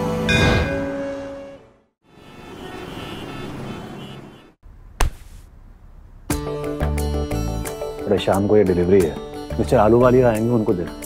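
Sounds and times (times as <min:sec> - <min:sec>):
theme music: 0:00.0 - 0:01.9
sharp hit: 0:00.3 - 0:01.3.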